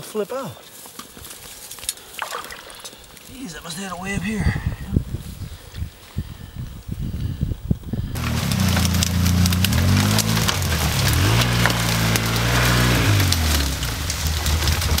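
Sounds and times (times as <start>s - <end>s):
brush crackling against machine: 0.6s - 3.9s, 8.2s - 15.0s
atv engine revving: 8.2s - 15.0s.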